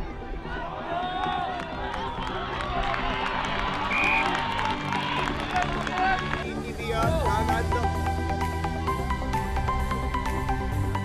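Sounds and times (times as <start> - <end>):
crowd chatter: 0.0 - 2.9.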